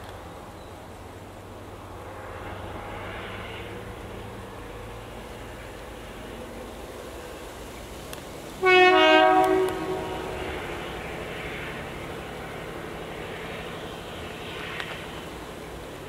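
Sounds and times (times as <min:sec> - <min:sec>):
train rumbling by: 0:00.0 - 0:16.0
locomotive horn blast: 0:08.6 - 0:10.8.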